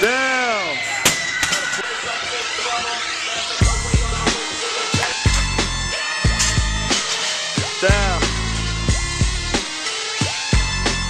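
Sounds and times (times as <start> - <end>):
voices: 0.0 - 5.4
background music: 0.0 - 11.0.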